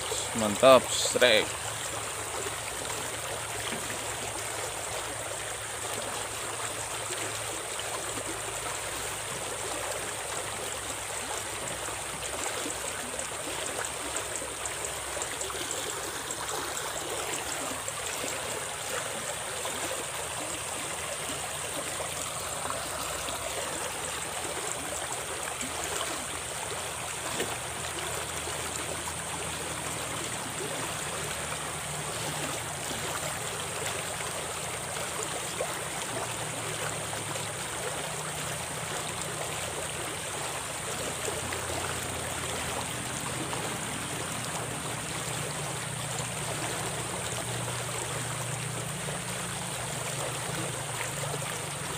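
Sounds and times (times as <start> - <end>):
stream rushing over riffles: 0.0 - 51.9.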